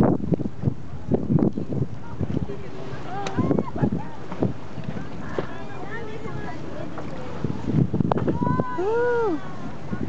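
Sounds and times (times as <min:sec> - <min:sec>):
sea: 0:00.0 - 0:10.0
wind noise on microphone: 0:00.0 - 0:10.0
faint voices: 0:00.8 - 0:10.0.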